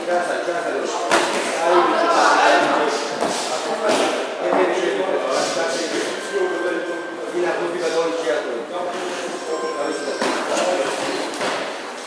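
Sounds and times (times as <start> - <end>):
voices talking and calling out: 0.2 - 11.5.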